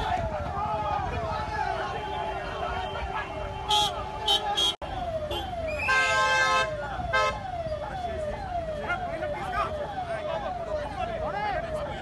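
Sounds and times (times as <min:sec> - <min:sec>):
vehicle siren sweeping: 0:00.0 - 0:12.0
voices shouting: 0:00.0 - 0:12.0
car horns honking: 0:01.7 - 0:07.5.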